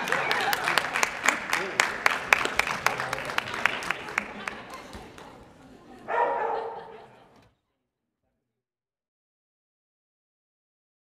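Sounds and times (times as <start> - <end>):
dog barking in a hall: 6.1 - 7.4.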